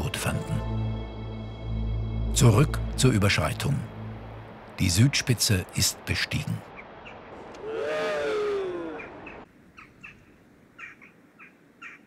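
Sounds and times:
bird drawn-out call: 6.8s - 12.0s.

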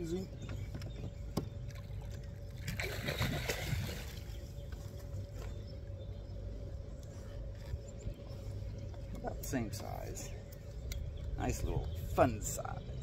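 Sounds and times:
steady low rumble: 0.0s - 13.0s
water splashing: 1.8s - 4.3s.

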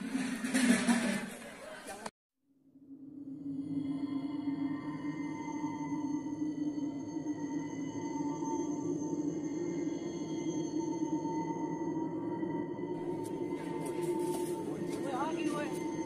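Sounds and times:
eerie drone music: 2.6s - 16.0s.

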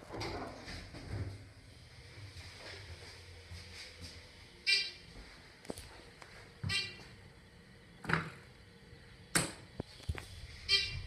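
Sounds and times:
short electronic beep: 6.7s - 7.0s, 10.6s - 11.0s.

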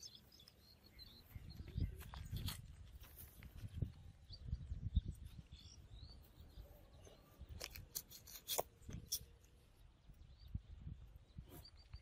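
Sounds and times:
bird chirps: 0.0s - 2.7s, 3.7s - 8.4s, 9.0s - 12.0s.

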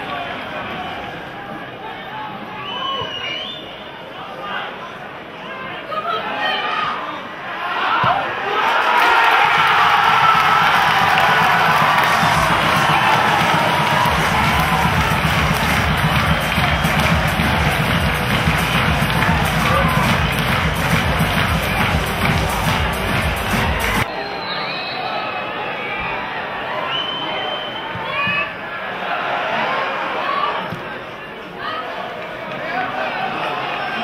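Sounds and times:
crowd cheering and shouting: 5.8s - 34.0s
music with steady beat: 10.1s - 24.1s.

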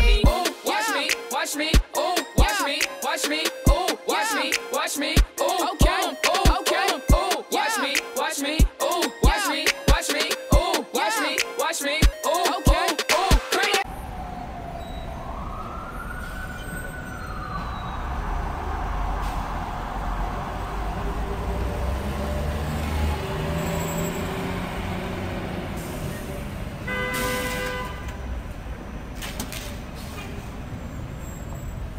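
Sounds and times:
rising and falling tone: 12.3s - 25.8s
low engine rumble: 17.4s - 26.8s.

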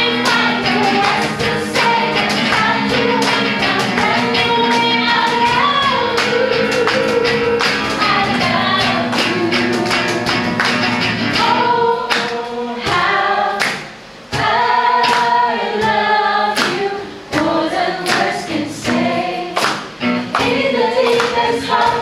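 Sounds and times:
strummed acoustic guitar: 0.0s - 13.1s
group singing into microphones: 0.0s - 22.0s.

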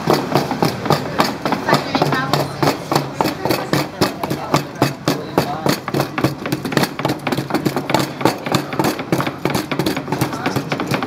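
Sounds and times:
knives chopping on wooden boards: 0.0s - 11.0s
pestle pounding in wooden mortar: 0.0s - 11.0s.

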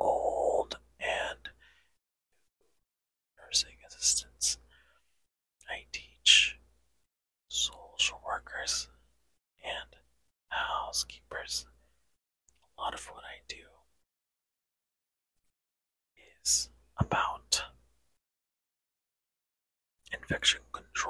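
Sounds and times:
man whispering: 0.0s - 1.7s, 3.4s - 4.8s, 5.6s - 6.6s, 7.5s - 9.0s, 9.6s - 11.7s, 12.7s - 13.8s, 16.2s - 17.8s, 20.1s - 21.0s.

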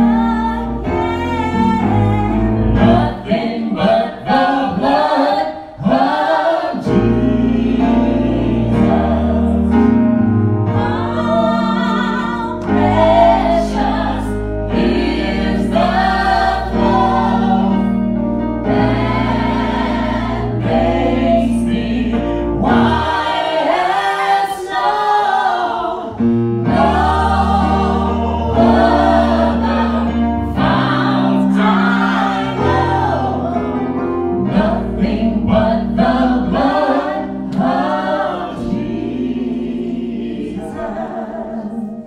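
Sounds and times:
group singing gospel: 0.0s - 42.0s
sustained keyboard chords: 6.8s - 24.1s, 26.1s - 42.0s.

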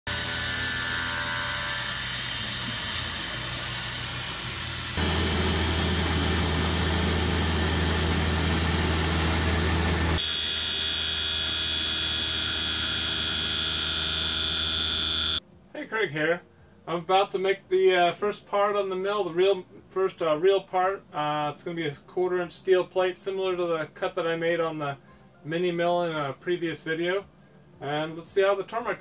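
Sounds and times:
high-pitched machine whine: 0.1s - 15.4s
mill cutting steel plate: 0.1s - 15.4s.

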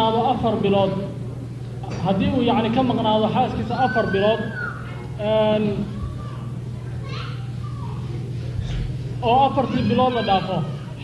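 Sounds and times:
man speaking into microphone: 0.0s - 1.2s, 1.8s - 4.6s, 5.2s - 5.9s, 9.2s - 10.8s
faint voices: 0.8s - 11.0s.

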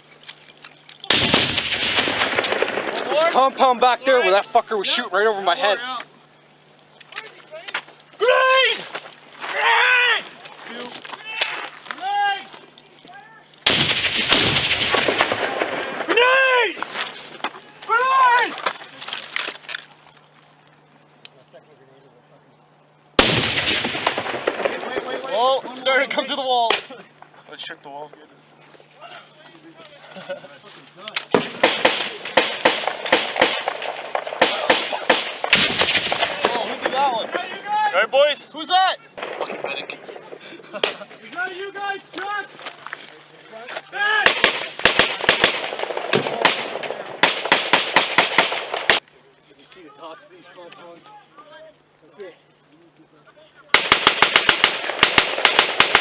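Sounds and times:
loud blast: 1.1s - 3.4s, 13.6s - 16.5s, 23.2s - 25.4s, 31.4s - 37.7s
rifle and machine-gun fire: 1.1s - 3.6s, 13.6s - 16.2s, 23.2s - 25.6s, 31.3s - 37.6s, 39.2s - 41.0s, 44.2s - 49.0s, 53.7s - 56.0s
indistinct shouting: 8.2s - 10.4s, 11.2s - 12.5s, 15.4s - 16.9s, 17.6s - 18.7s, 43.9s - 44.4s.

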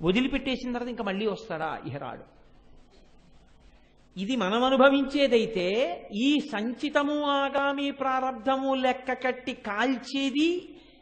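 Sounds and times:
man talking: 0.0s - 2.3s, 4.2s - 10.7s
faint background hiss: 0.0s - 11.0s.

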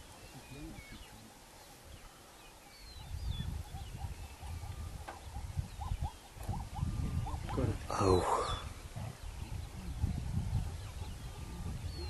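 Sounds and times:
small birds chirping: 0.0s - 12.0s
wind rumble: 3.0s - 12.0s.

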